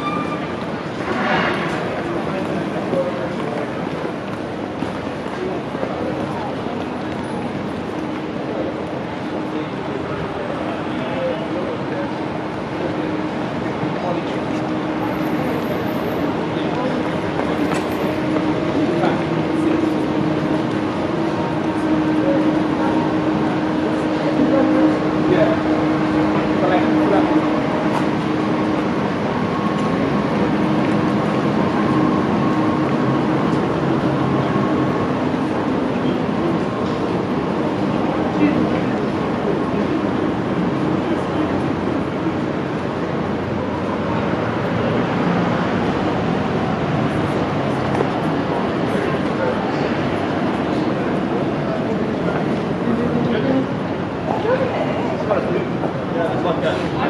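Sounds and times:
passers-by talking: 0:00.0 - 0:57.0
traffic hum: 0:00.0 - 0:57.0.

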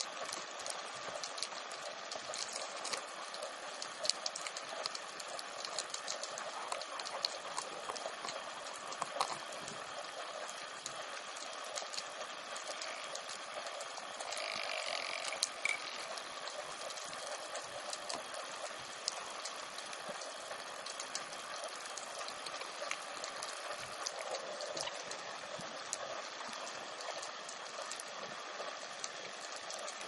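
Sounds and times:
scattered clicks and crackles: 0:00.0 - 0:30.0.

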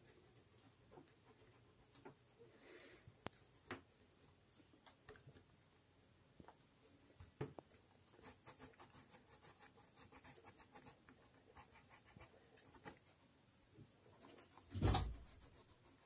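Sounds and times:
pencil scratching on paper: 0:08.1 - 0:13.3, 0:14.1 - 0:16.0.

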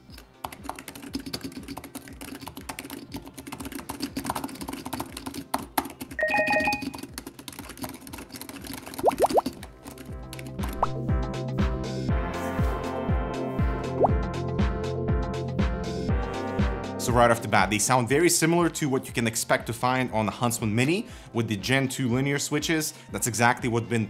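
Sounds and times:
background music with steady beat: 0:00.0 - 0:24.0.

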